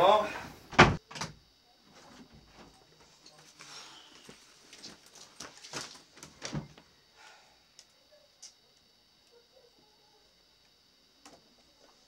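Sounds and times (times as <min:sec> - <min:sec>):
footsteps: 0:01.9 - 0:06.9.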